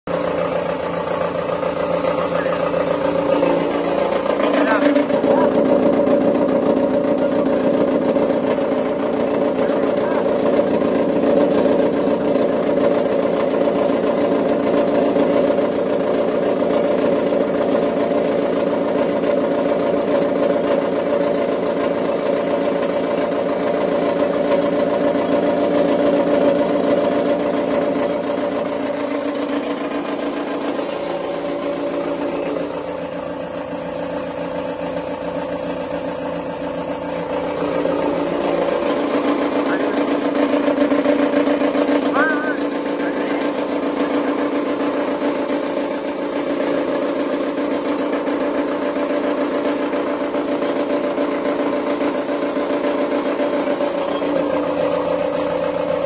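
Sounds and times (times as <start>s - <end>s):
cutting machine humming: 0.0s - 56.0s.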